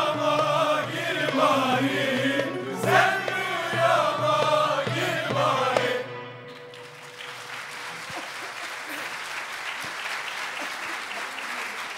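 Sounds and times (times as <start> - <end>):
choir with string ensemble: 0.0 - 7.0
audience applause: 6.5 - 11.9.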